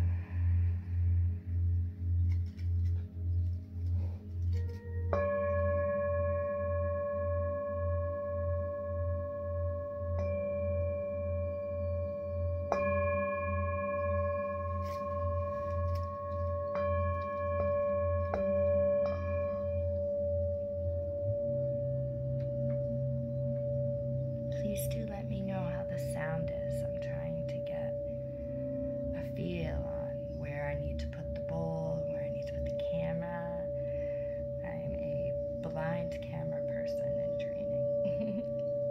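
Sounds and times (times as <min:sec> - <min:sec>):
wavering low hum: 0:00.0 - 0:38.9
singing bowl ringing: 0:03.2 - 0:38.9.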